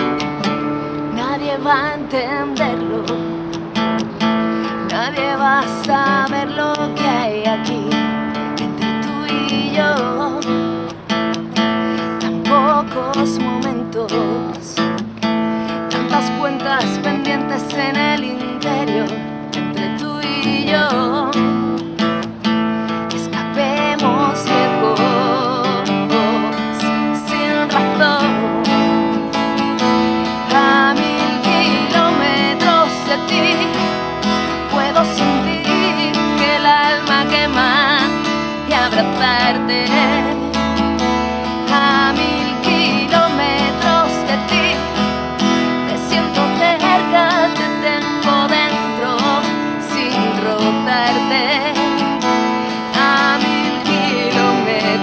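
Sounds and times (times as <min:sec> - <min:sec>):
strummed acoustic guitar: 0:00.0 - 0:55.0
woman singing with vibrato: 0:00.0 - 0:55.0.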